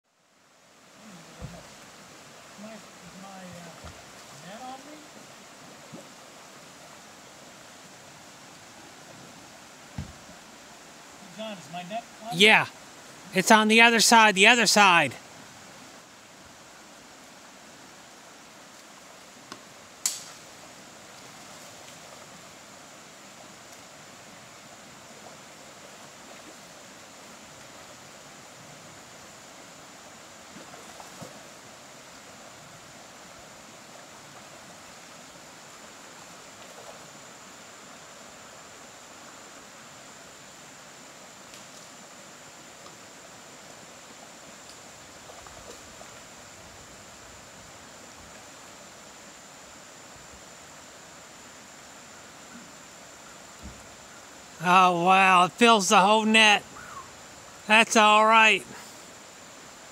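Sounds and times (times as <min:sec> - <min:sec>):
stream running over rocks: 0:00.1 - 0:59.9.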